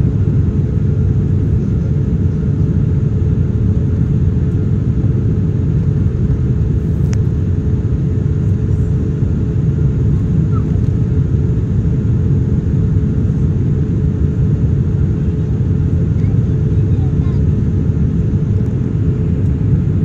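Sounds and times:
jet engines rumbling: 0:00.0 - 0:20.0.

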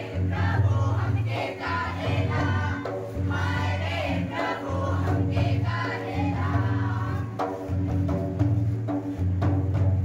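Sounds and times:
group singing in chorus: 0:00.0 - 0:07.9.

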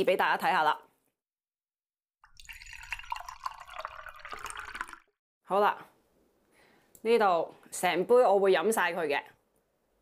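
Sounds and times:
water pouring into a glass: 0:02.2 - 0:05.2.

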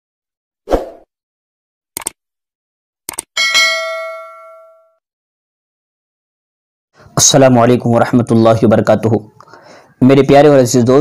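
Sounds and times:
quick clicks: 0:02.0 - 0:02.2, 0:03.1 - 0:03.3
bell-like ding: 0:03.4 - 0:05.0.

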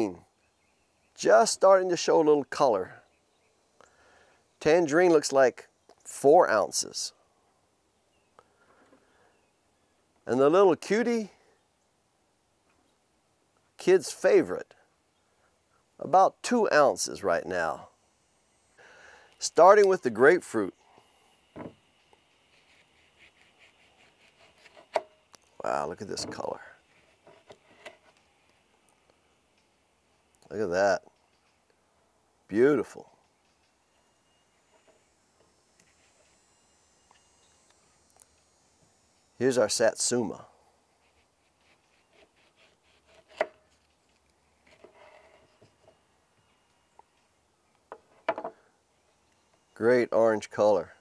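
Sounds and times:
knife sawing through fruit peel: 0:22.4 - 0:25.0, 0:41.0 - 0:43.8.

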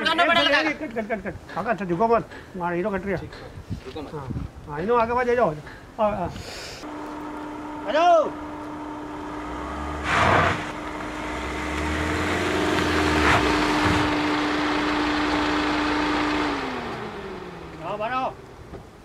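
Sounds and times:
car engine and tyres on dirt: 0:06.9 - 0:19.0.

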